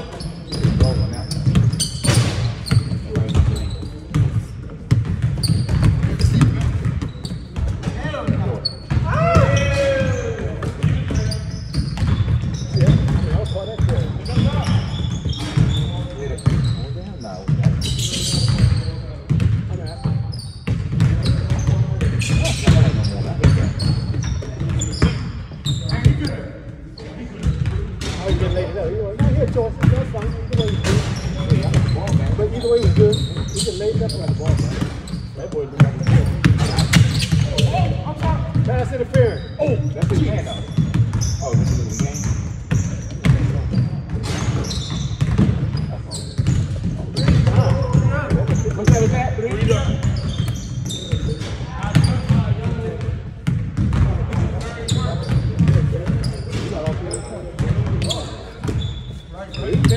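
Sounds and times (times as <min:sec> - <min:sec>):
basketballs bouncing on wood floor: 0:00.0 - 0:59.9.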